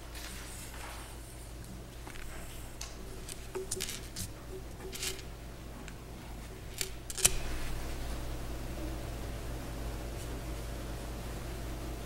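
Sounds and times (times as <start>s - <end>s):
paper rustling: 0.0s - 5.3s
low electrical hum: 0.0s - 12.0s.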